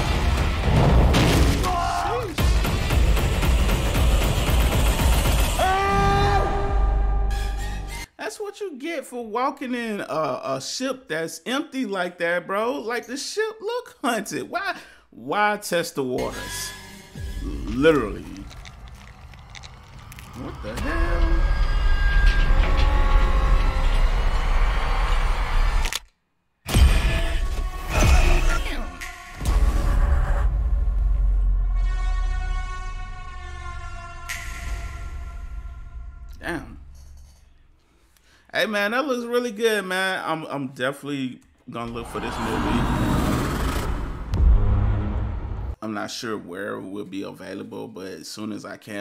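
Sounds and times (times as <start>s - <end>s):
loud crashing hit: 0.0s - 1.8s
tense horror music: 0.0s - 8.1s, 16.3s - 25.9s, 26.7s - 36.4s, 41.9s - 45.8s
low booms: 42.0s - 45.8s.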